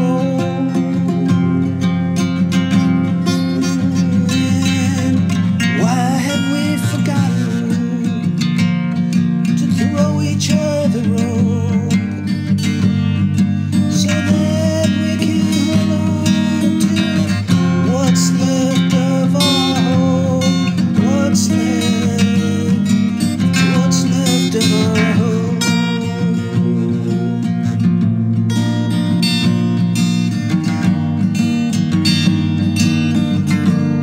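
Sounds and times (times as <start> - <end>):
acoustic guitar strumming: 0.0 - 34.0.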